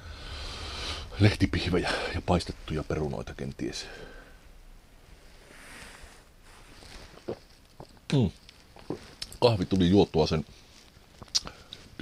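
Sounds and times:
man gulping coffee: 0:07.2 - 0:08.1, 0:08.7 - 0:09.3.

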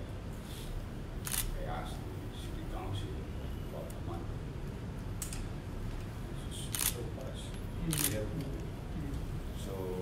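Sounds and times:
faint talk in room: 0:00.7 - 0:10.0
camera shutter click: 0:01.2 - 0:01.5, 0:06.7 - 0:07.0, 0:07.9 - 0:08.2.

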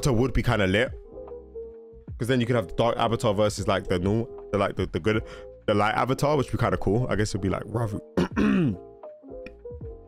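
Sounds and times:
faint background music: 0:00.0 - 0:10.0
man clearing his throat: 0:08.2 - 0:08.9.

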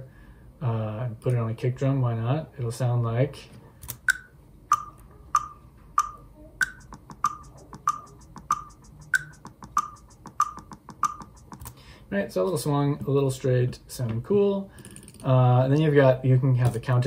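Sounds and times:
metronome clicks: 0:04.0 - 0:11.8
snare ghost notes: 0:04.1 - 0:11.8.

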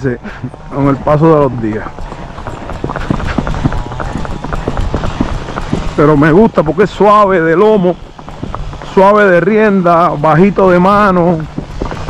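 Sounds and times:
hooves on paved road: 0:00.0 - 0:12.0.

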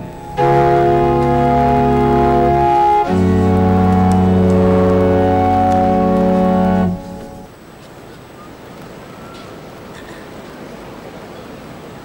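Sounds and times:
organ chord: 0:00.0 - 0:07.5
background noise: 0:00.0 - 0:12.0.

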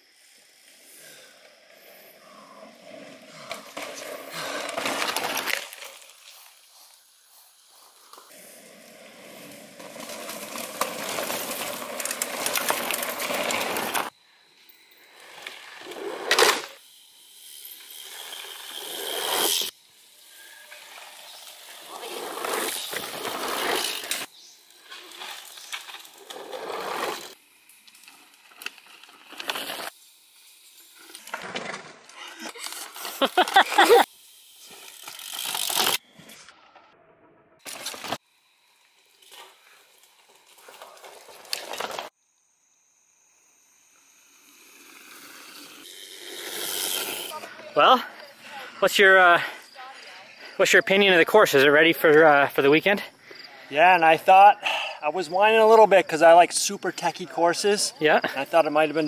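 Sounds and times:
bike tyres rolling on dirt: 0:00.2 - 0:36.3, 0:37.6 - 0:42.2, 0:44.0 - 0:59.0.

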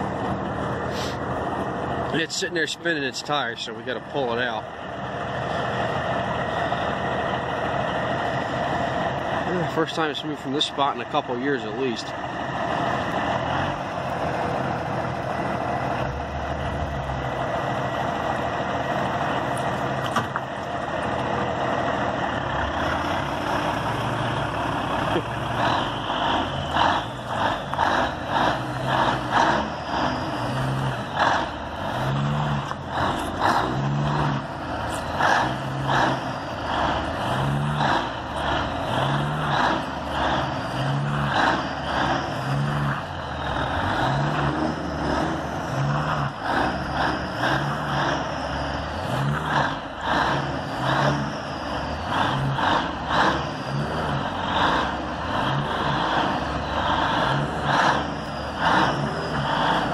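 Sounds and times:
diesel engine under load: 0:00.0 - 0:59.9.

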